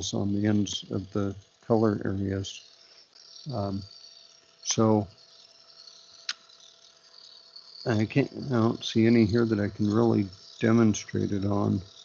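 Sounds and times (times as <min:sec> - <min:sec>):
faint high-pitched hum: 0:00.0 - 0:12.0.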